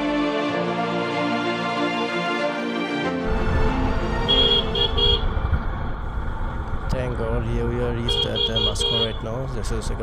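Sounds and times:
motorcycle rumbling: 0:03.2 - 0:10.0
motorcycle horn beeps: 0:04.2 - 0:05.3, 0:08.1 - 0:09.2.

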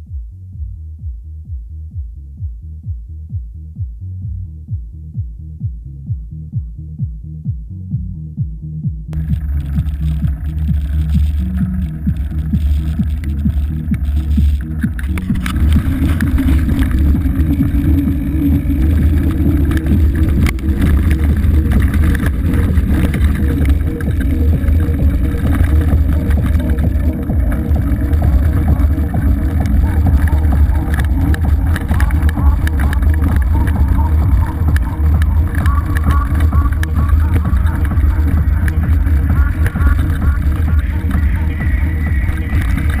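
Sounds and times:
electronic music: 0:01.0 - 0:43.0
bike rattles: 0:09.2 - 0:43.0
wind on microphone: 0:09.2 - 0:43.0.

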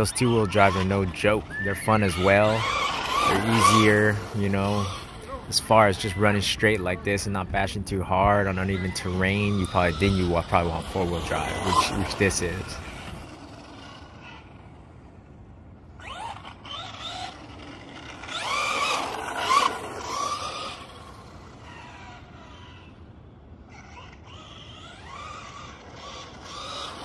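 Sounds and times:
rc car electric motor whine: 0:00.0 - 0:15.2, 0:15.8 - 0:27.0.

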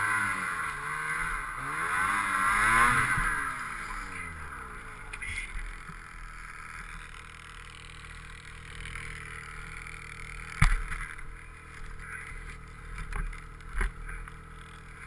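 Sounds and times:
snowmobile engine idling: 0:00.0 - 0:15.0.

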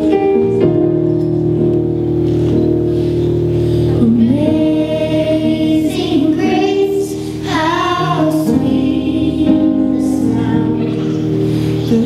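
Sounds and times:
instrumental accompaniment: 0:00.0 - 0:12.0
children's choir singing: 0:04.0 - 0:12.0.

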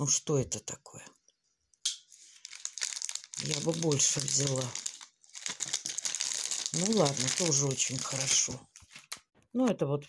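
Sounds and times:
plastic packets crinkling: 0:02.1 - 0:09.3.

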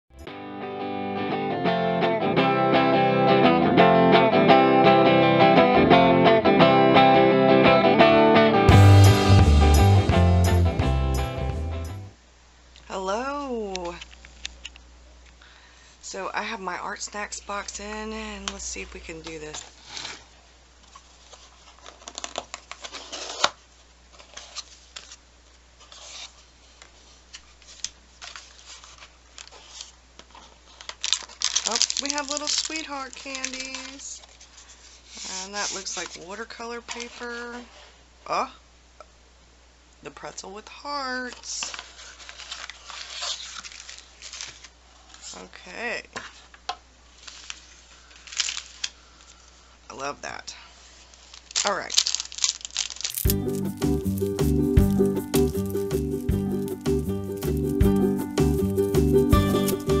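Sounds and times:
packaging rustling: 0:18.4 - 0:25.2, 0:25.8 - 0:37.3, 0:41.6 - 0:45.4, 0:46.2 - 0:49.6, 0:50.8 - 1:00.0
cardboard scraping and rubbing: 0:19.5 - 0:25.2, 0:25.8 - 0:30.9, 0:53.4 - 1:00.0.

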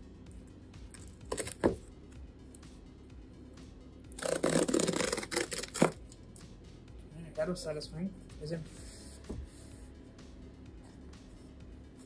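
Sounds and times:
cardboard tear strip ripping: 0:01.0 - 0:01.8, 0:04.1 - 0:06.0.

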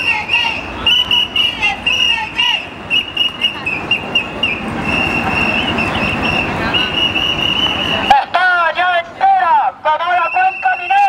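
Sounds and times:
shrill whistles blowing: 0:00.0 - 0:08.2, 0:10.2 - 0:11.0
crowd noise: 0:00.0 - 0:11.0.

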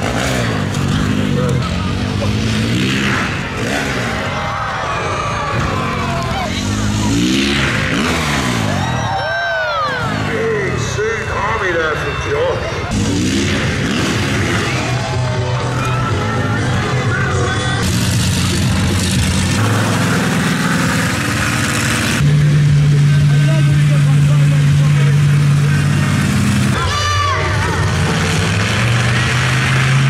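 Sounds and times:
truck engine droning: 0:00.0 - 0:30.0
voice over loudspeaker: 0:10.2 - 0:13.0, 0:15.8 - 0:17.9
music: 0:14.9 - 0:17.9.

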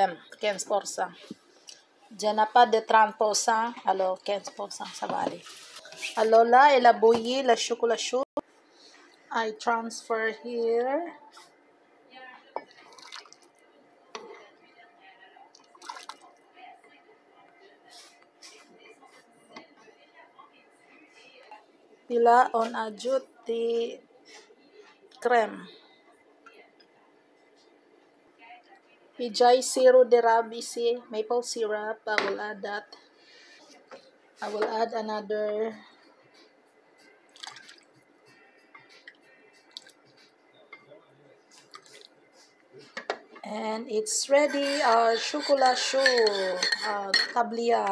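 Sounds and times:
liquid pouring and dripping: 0:12.8 - 0:13.5, 0:37.3 - 0:37.8.

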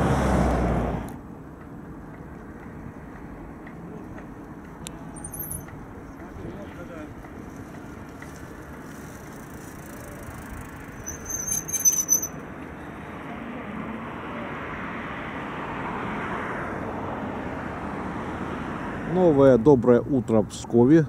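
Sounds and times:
road traffic passing: 0:00.0 - 0:21.0
high-pitched squeal: 0:11.0 - 0:12.4.

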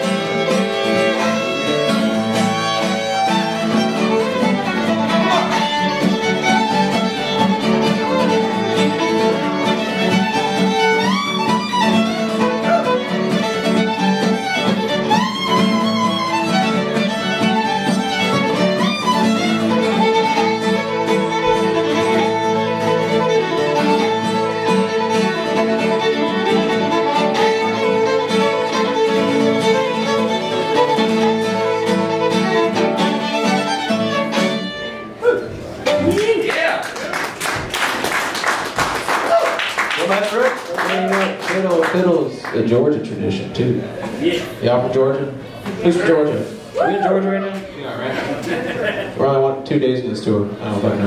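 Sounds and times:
fiddle playing: 0:00.0 - 0:35.2
strummed acoustic guitar: 0:00.0 - 0:36.1.

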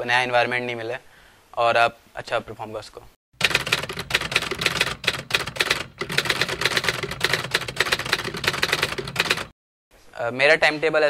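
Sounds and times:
keyboard typing clatter: 0:03.4 - 0:09.6.

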